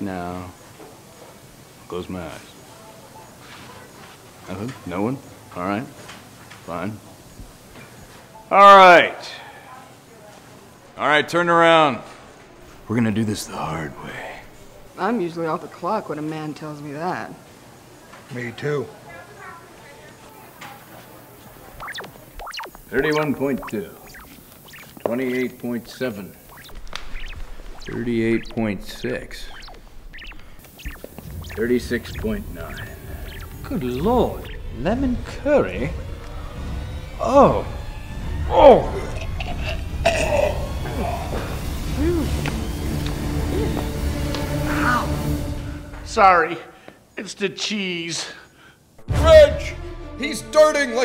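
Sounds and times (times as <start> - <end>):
faint voices: 17.3 - 42.5
steady low hum: 21.1 - 43.2
electronic sweeps and bleeps: 21.7 - 43.6
man gagging and retching: 39.5 - 40.7.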